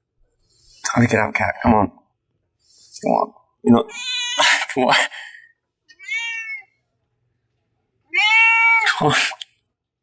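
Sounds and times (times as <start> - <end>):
cat meowing: 3.9 - 4.5, 5.9 - 6.8, 8.1 - 9.0.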